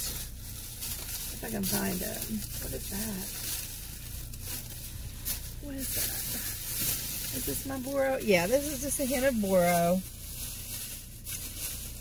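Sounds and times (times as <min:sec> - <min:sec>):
low steady hum: 0:00.0 - 0:12.0
plastic bag rustling: 0:00.0 - 0:12.0.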